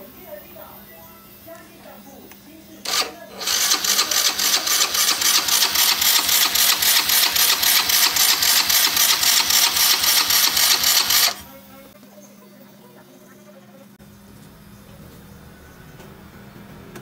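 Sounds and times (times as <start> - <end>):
scooter engine running: 2.9 - 11.5.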